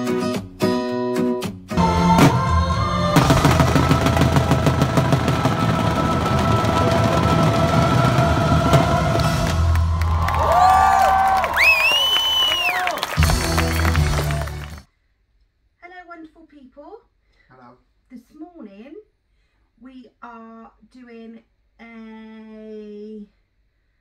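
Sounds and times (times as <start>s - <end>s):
music: 0.0s - 10.2s, 13.2s - 14.9s
fireworks whistling: 1.8s - 10.0s, 11.6s - 14.8s
fireworks crackling bangs: 2.2s - 10.0s.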